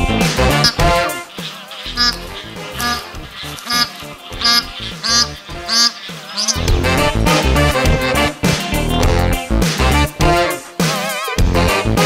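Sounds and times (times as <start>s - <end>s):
background music: 0.0s - 12.0s
goose honking: 0.4s - 6.7s.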